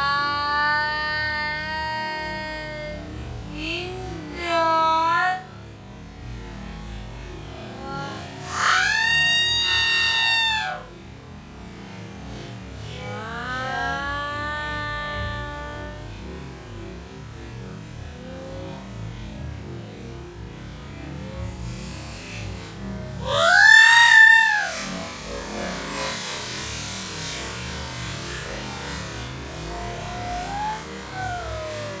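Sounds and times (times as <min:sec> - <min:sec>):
woman's long slowed cry: 0:00.0 - 0:05.5, 0:07.4 - 0:11.1, 0:12.8 - 0:17.5, 0:23.2 - 0:32.0
slowed smeared voice tones: 0:00.0 - 0:05.8, 0:06.8 - 0:10.9, 0:12.2 - 0:18.8, 0:21.8 - 0:32.0.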